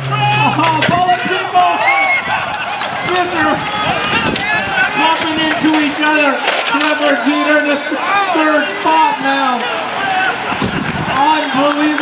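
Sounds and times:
excited race commentary: 0.0 - 12.0
people talking: 0.0 - 12.0.

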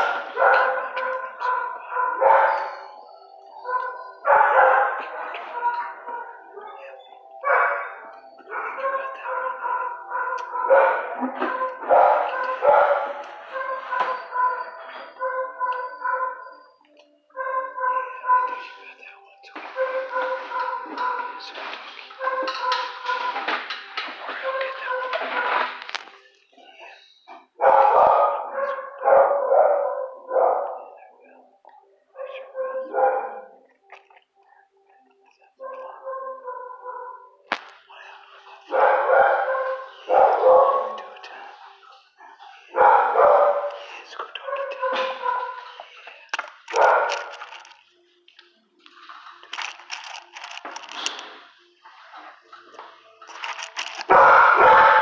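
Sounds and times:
dogs barking: 0.0 - 26.2, 26.8 - 34.2, 35.4 - 47.9, 52.7 - 55.0.

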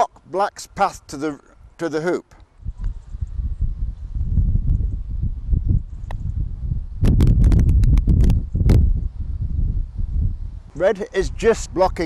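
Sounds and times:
wind buffeting microphone: 2.5 - 12.0.

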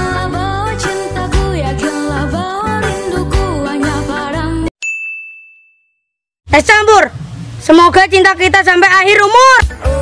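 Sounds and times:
background music: 0.0 - 4.7, 7.7 - 10.0
high bell-like ding: 4.8 - 6.2.

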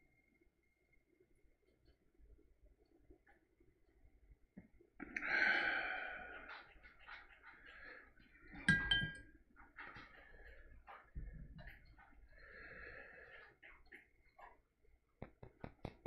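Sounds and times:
person breathing out: 5.2 - 6.6
sharp ringing clink: 8.7 - 9.2.

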